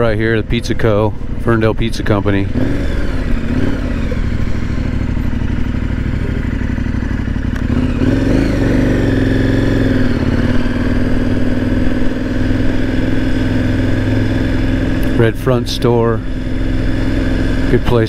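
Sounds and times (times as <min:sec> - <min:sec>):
motorcycle engine idling and revving: 0:00.0 - 0:18.0.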